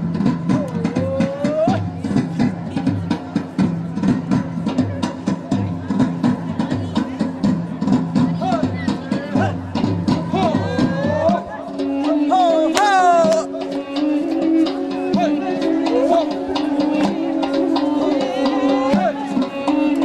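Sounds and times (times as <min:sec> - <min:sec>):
fast drum beat: 0:00.0 - 0:20.0
folk dance music: 0:00.0 - 0:20.0.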